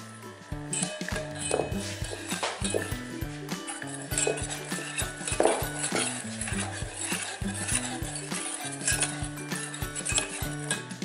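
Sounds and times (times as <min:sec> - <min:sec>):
background music: 0:00.0 - 0:11.0
whisk clinking against metal bowl: 0:00.0 - 0:11.0.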